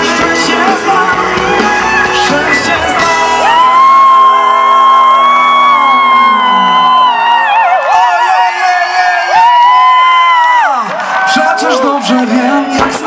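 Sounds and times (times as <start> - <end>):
high lead melody long notes: 0.0 - 6.6
live pop band music: 0.0 - 13.0.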